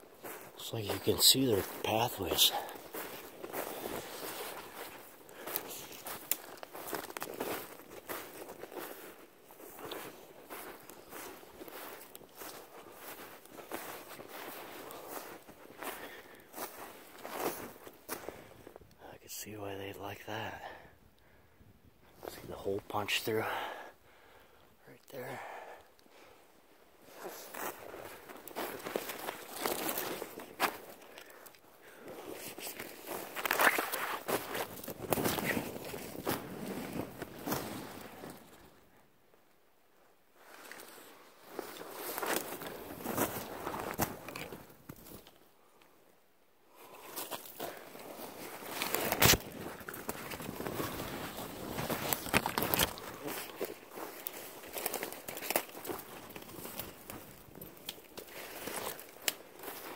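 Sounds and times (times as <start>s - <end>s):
footsteps crunching through snow: 0.0s - 18.7s, 27.0s - 38.8s, 40.4s - 45.2s, 46.8s - 59.9s
twigs crackling and snapping: 2.6s - 8.8s, 27.3s - 31.7s, 32.6s - 38.6s, 41.6s - 45.4s, 47.0s - 59.9s.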